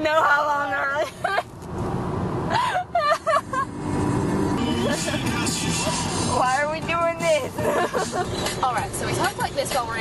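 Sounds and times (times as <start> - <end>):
engine and tyres rumbling: 0.0 - 10.0.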